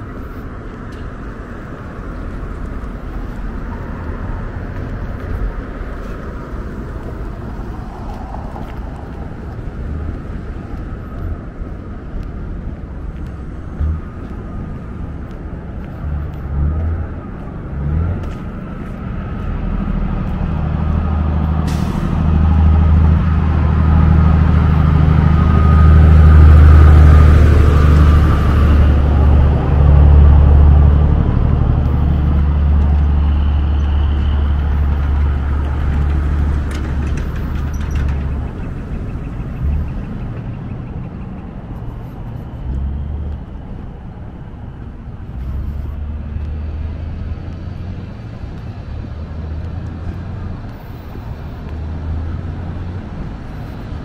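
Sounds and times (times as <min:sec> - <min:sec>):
heavy vehicle rumbling past: 0:00.0 - 0:11.8, 0:12.4 - 0:54.0.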